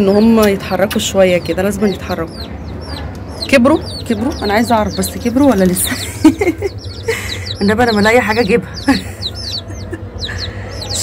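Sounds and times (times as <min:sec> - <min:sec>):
baby chicks peeping: 0:00.0 - 0:11.0.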